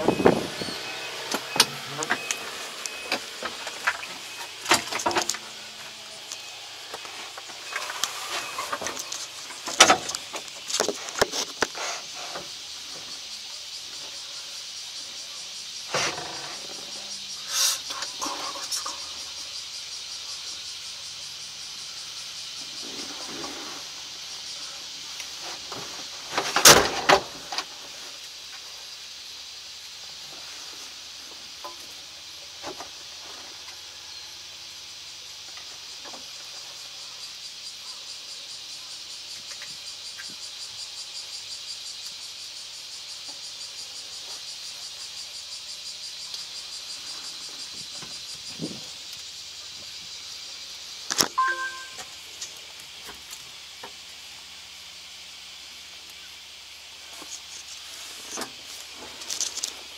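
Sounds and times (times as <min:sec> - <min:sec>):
insects chorus: 0:00.0 - 0:59.9.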